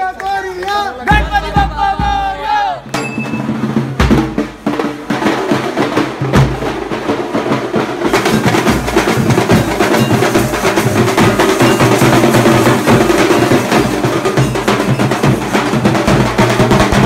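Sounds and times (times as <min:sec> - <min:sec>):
dhol drums beaten fast: 0:01.0 - 0:17.0.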